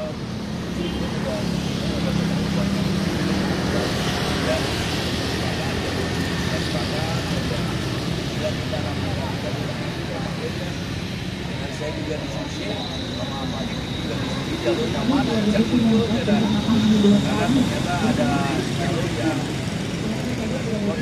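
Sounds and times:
murmur of people talking: 0:00.0 - 0:21.0
road traffic: 0:00.0 - 0:21.0.

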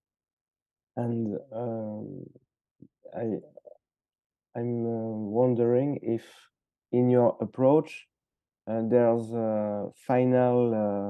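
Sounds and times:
man speaking hesitantly: 0:01.0 - 0:02.2, 0:03.2 - 0:03.7, 0:04.6 - 0:06.2, 0:07.0 - 0:08.0, 0:08.7 - 0:11.0.

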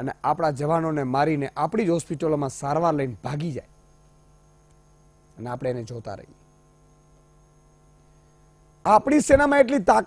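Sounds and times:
electrical mains hum: 0:00.0 - 0:10.0
man speaking: 0:05.4 - 0:06.4, 0:08.8 - 0:10.0.

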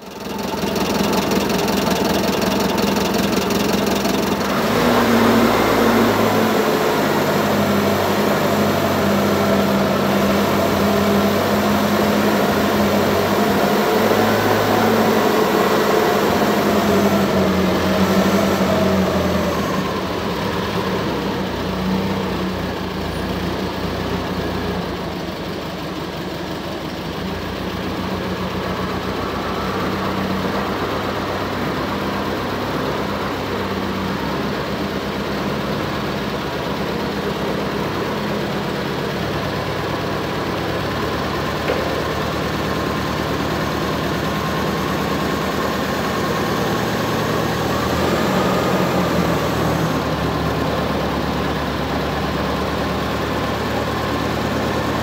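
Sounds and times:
forklift engine idling: 0:00.0 - 0:55.0.

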